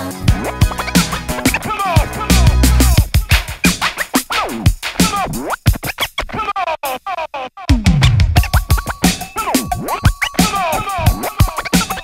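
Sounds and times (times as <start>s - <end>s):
turntable scratching: 0.0s - 12.0s
drum beat: 0.1s - 7.1s, 7.7s - 12.0s.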